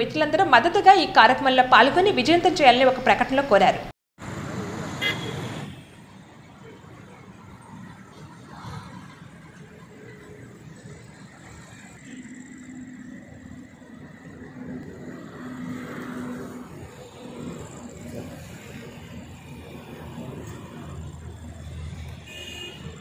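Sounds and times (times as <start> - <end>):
outdoor background noise: 0.0 - 23.0.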